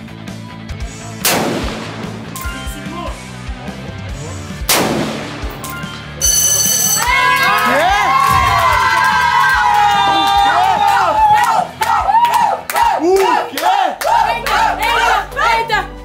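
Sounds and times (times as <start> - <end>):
background music: 0.0 - 16.0
rifle shots: 1.2 - 2.4, 4.7 - 5.6
onlookers shouting and cheering: 6.7 - 16.0.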